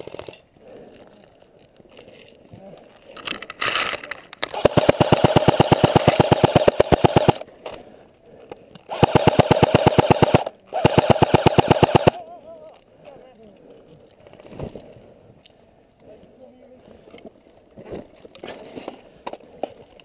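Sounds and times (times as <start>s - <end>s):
airsoft rifle firing full-auto: 4.4s - 7.4s, 8.9s - 12.2s.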